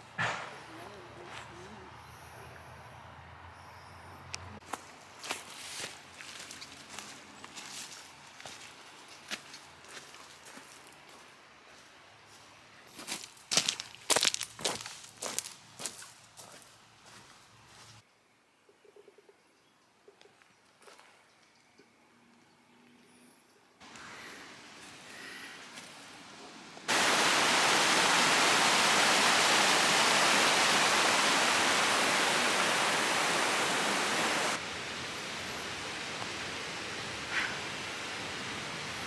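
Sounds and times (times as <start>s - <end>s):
footsteps on pebbles and dry leaves: 4.6s - 18.0s.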